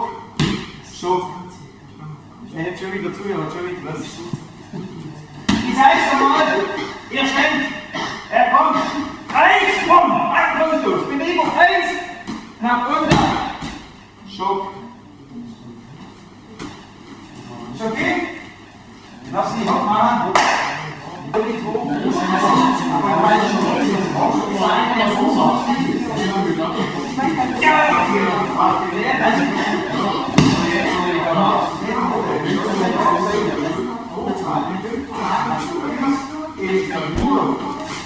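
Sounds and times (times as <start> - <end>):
people talking: 0.0 - 38.0.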